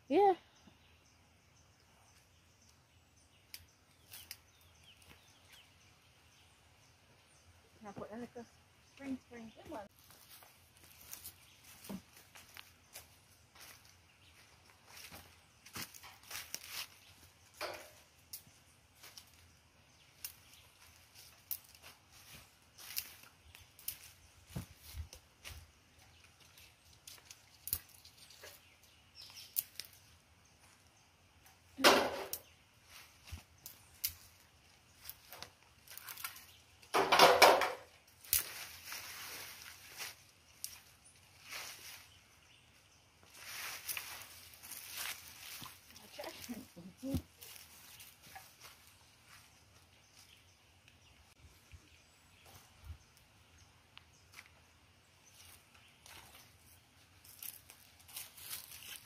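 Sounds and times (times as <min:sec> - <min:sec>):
dry leaves and twigs crackling: 0:01.9 - 0:08.4, 0:09.0 - 0:59.0.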